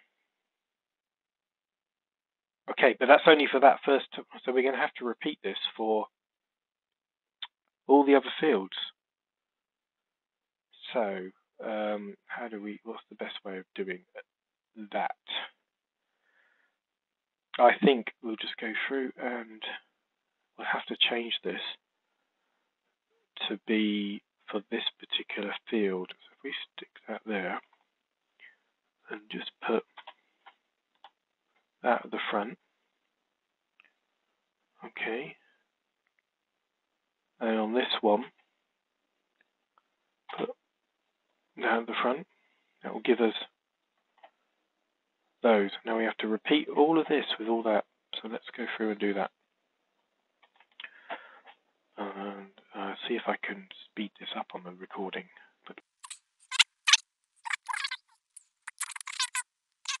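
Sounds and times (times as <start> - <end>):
person speaking: 2.9 - 6.0, 10.8 - 14.2, 14.8 - 15.6, 17.6 - 19.8, 23.4 - 27.6, 29.1 - 30.1, 31.8 - 32.6, 40.3 - 40.5, 52.0 - 58.0, 58.6 - 60.0
sped-up squeaky man's voice: 23.4 - 27.6, 29.1 - 29.8, 52.0 - 58.0, 58.7 - 60.0
computer clicks: 56.0 - 60.0.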